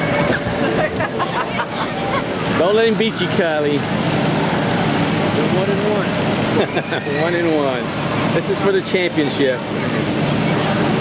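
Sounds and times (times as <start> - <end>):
blower rushing noise: 0.0 - 11.0
children's voices: 1.2 - 2.6, 9.4 - 11.0.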